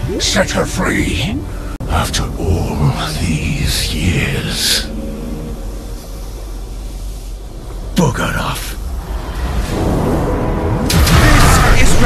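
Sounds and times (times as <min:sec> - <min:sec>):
low steady rumble: 0:00.0 - 0:11.4.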